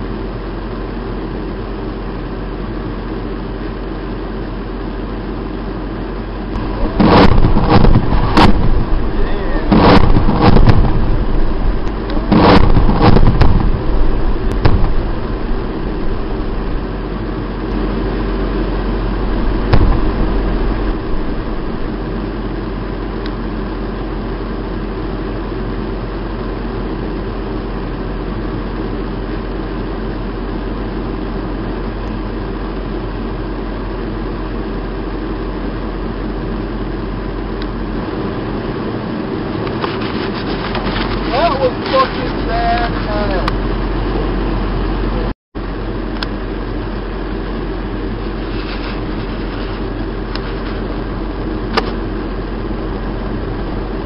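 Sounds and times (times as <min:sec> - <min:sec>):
military vehicle engine droning: 0:00.0 - 0:54.0
bomb explosions: 0:06.5 - 0:23.1.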